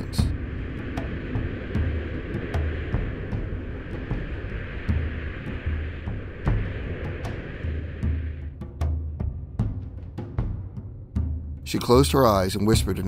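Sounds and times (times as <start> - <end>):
background music with deep drum: 0.0 - 13.0
wind-like rushing: 0.0 - 13.0.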